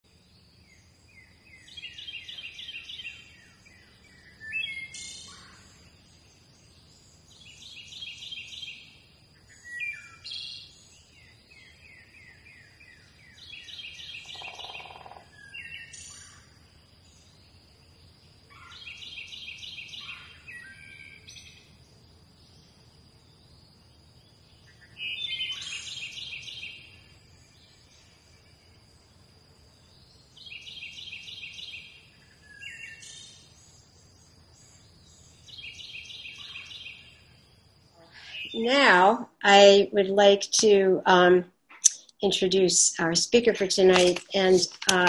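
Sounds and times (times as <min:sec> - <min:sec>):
songbird singing: 0:00.1 - 0:45.0.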